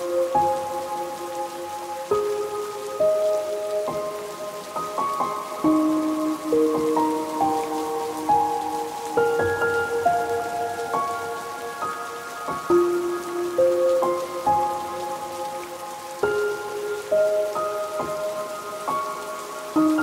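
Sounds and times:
slow soft instrumental music: 0.0 - 20.0
steady rain: 0.0 - 20.0.

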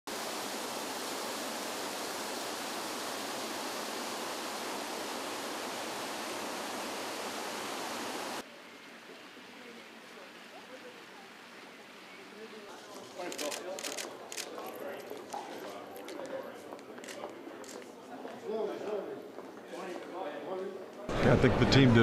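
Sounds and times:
water feature splashing: 0.1 - 12.1.

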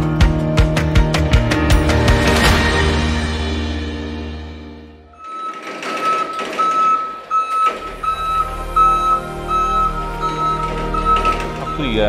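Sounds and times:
background music: 0.0 - 5.3, 7.6 - 12.0
forklift warning beeper: 5.2 - 12.0.

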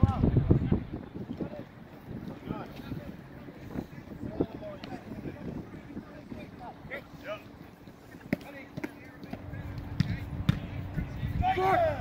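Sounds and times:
low outdoor rumble: 0.0 - 12.0
soccer ball thuds: 8.3 - 11.1.

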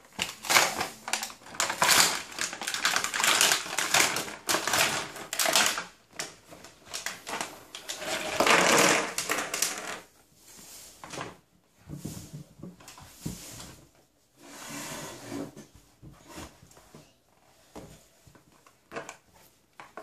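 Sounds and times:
plastic packaging film crinkling: 0.1 - 9.8.

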